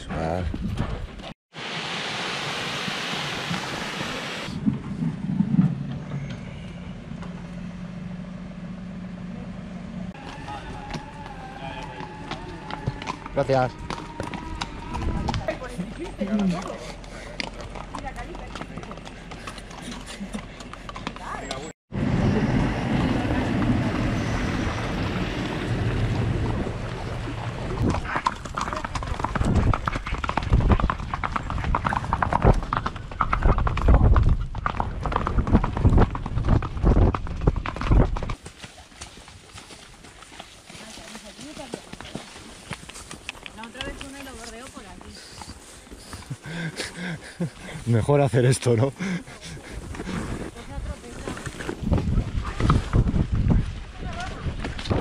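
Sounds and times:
hooves on gravel: 10.2s - 21.7s, 27.8s - 55.0s
low rumble: 22.0s - 30.6s.

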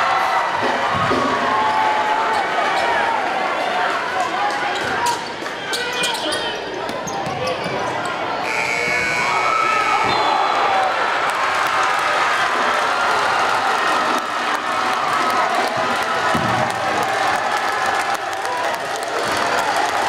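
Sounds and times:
gym crowd noise: 0.0s - 20.0s
sneakers squeaking on court: 5.7s - 8.2s.

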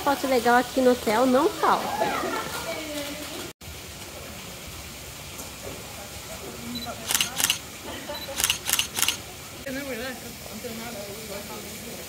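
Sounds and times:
waterfall hiss: 0.0s - 12.0s
camera shutter clicks: 7.1s - 7.6s, 8.3s - 9.2s.

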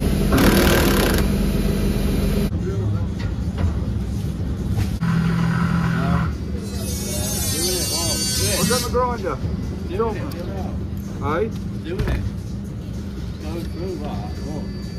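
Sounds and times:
low hum of machinery: 0.0s - 14.9s.

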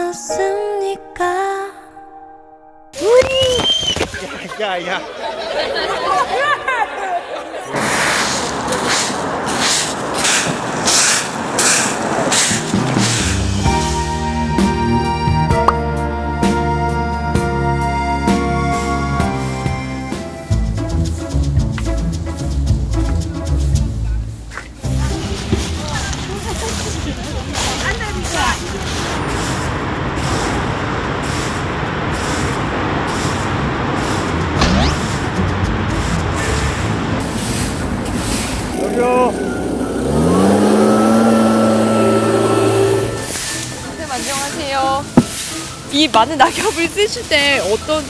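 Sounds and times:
music: 0.0s - 3.5s, 12.7s - 26.9s, 34.4s - 37.7s, 43.0s - 48.0s
street traffic rumble: 3.3s - 48.0s
broom sweeping leaves: 7.7s - 14.2s, 24.2s - 48.0s
dry leaves rustling and crunching: 24.8s - 30.4s.

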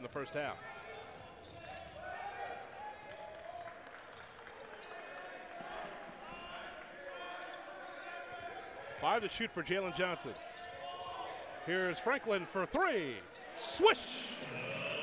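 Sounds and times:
voices calling out: 13.4s - 15.0s.

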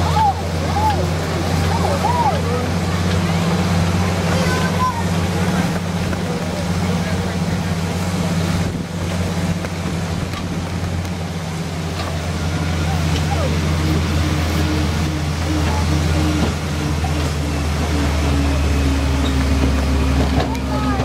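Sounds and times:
vehicle engine running at low revs: 0.0s - 21.0s.

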